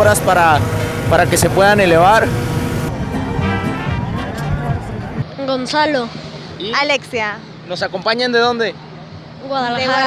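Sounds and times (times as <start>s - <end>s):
voices talking: 0.0s - 10.0s
background music with held notes: 2.6s - 5.3s.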